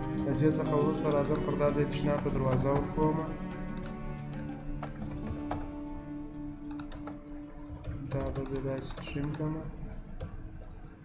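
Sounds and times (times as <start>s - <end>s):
background music with sustained notes: 0.0s - 11.0s
keyboard keys clicking: 0.9s - 5.7s, 6.7s - 7.2s, 8.1s - 9.4s.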